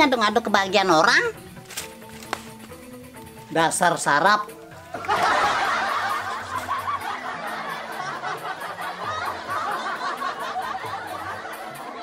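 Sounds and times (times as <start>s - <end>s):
people laughing together: 4.8s - 12.0s.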